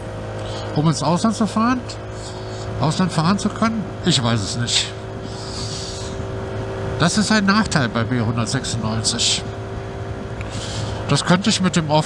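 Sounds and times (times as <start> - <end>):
scooter engine running steadily: 0.0 - 12.0.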